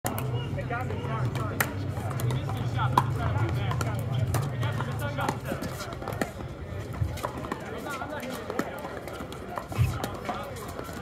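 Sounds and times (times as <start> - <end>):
paddles hitting plastic ball: 0.1 - 11.0.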